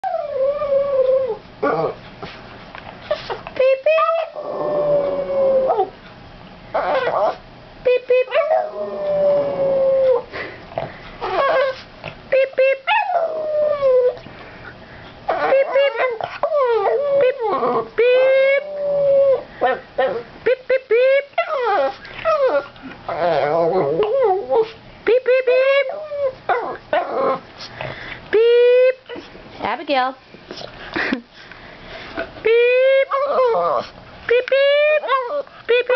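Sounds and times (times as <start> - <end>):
dog howling: 3.9 - 6.0, 8.3 - 10.3, 15.3 - 20.3, 21.4 - 24.7, 32.6 - 33.9.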